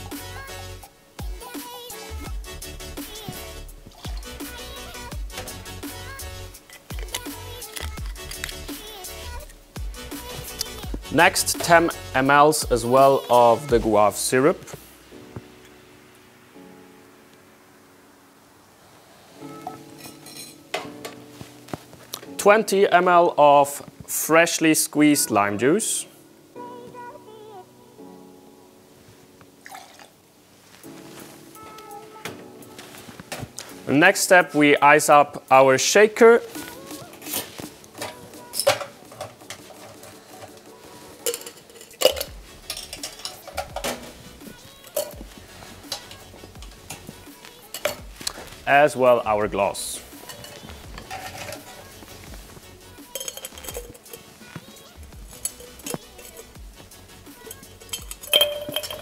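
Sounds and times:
soft background music: 0:00.0 - 0:59.0
metal bar tools clinking: 0:20.0 - 0:21.2, 0:41.2 - 0:44.1, 0:44.8 - 0:45.2, 0:50.2 - 0:51.9, 0:53.1 - 0:54.3, 0:55.4 - 0:56.4, 0:57.4 - 0:59.0.

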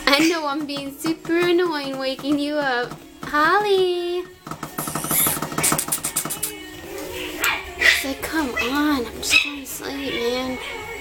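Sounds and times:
person making rattling mouth noise: 0:04.7 - 0:06.6.

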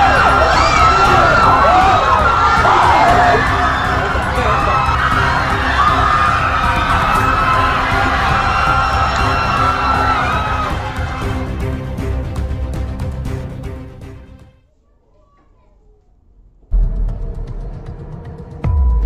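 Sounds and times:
crowd screaming in panic: 0:00.0 - 0:11.8
low steady music: 0:00.0 - 0:14.6.

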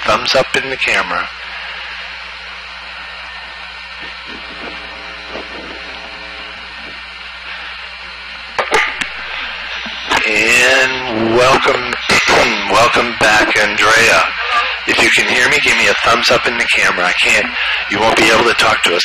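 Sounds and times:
man's voice over radio intercom: 0:00.0 - 0:02.0, 0:04.0 - 0:07.8, 0:09.1 - 0:19.0
low hum: 0:00.0 - 0:18.2
steady hiss: 0:00.0 - 0:19.0
faint murmured voices: 0:02.9 - 0:07.8, 0:10.1 - 0:18.8.

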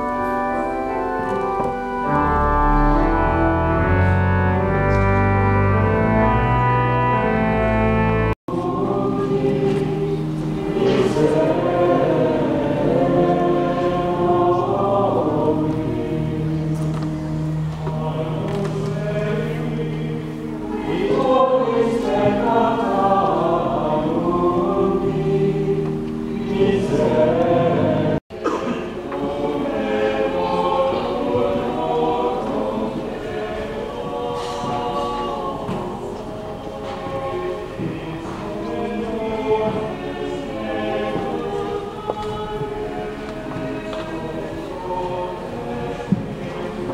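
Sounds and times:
choir singing: 0:00.0 - 0:46.9.

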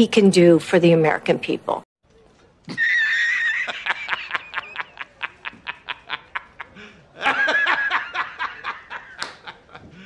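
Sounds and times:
man laughing: 0:02.7 - 0:10.0.

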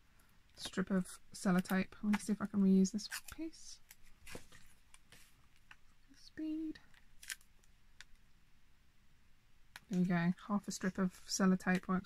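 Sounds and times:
sticky tape crackling: 0:03.0 - 0:04.4, 0:06.9 - 0:08.2.

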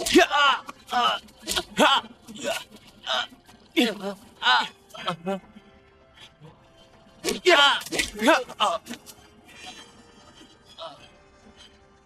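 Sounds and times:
men grunting and crying out: 0:00.0 - 0:05.6, 0:07.2 - 0:09.8.

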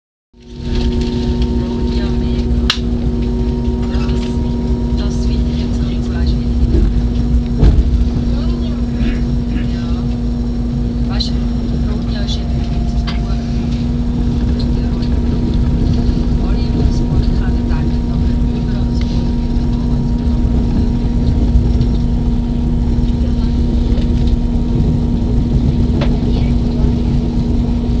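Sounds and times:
train rumbling inside carriage: 0:00.4 - 0:28.0.

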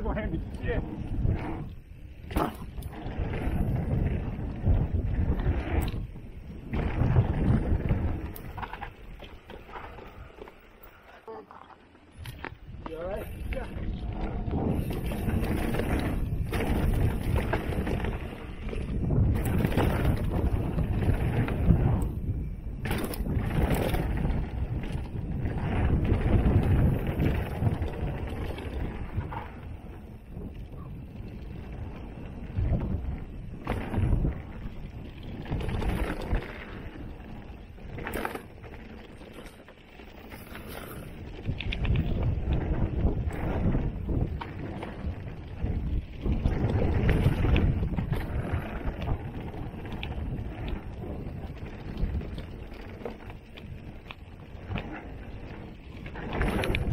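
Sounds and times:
wind buffeting microphone: 0:00.0 - 0:11.1, 0:12.1 - 0:56.9
tyres rolling over dirt and leaves: 0:00.0 - 0:56.9
bike knocking over rocks: 0:02.2 - 0:06.0, 0:11.5 - 0:22.1, 0:22.7 - 0:29.6.

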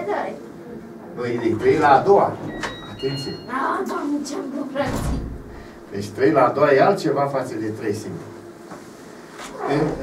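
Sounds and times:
man speaking: 0:01.2 - 0:03.5, 0:05.9 - 0:08.3, 0:09.6 - 0:10.0.

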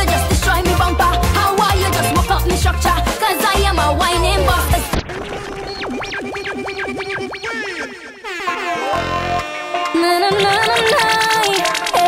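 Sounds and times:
reggae music: 0:00.0 - 0:12.0
air horn blast: 0:08.2 - 0:10.4.

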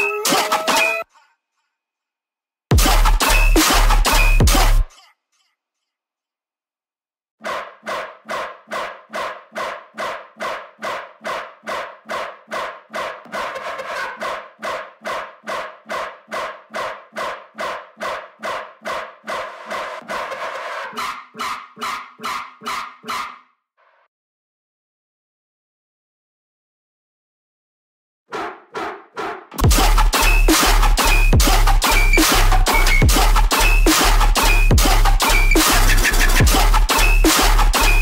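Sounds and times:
bass synth loop stabs: 0:02.7 - 0:04.9, 0:29.6 - 0:38.0.

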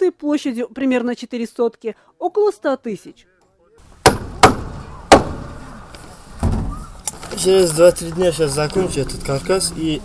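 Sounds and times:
hammer striking wooden lath: 0:04.0 - 0:05.5.

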